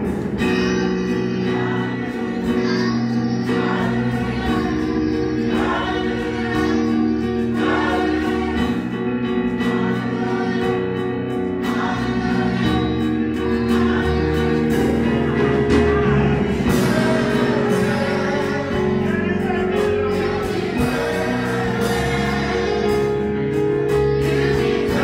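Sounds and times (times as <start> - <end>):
group singing gospel: 0.0 - 25.0
instruments playing: 0.0 - 25.0.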